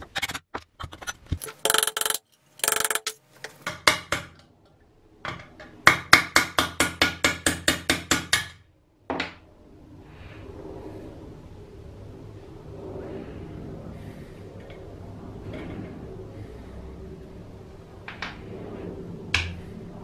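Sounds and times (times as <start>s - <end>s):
hammer tapping metal punch: 1.4s - 4.4s.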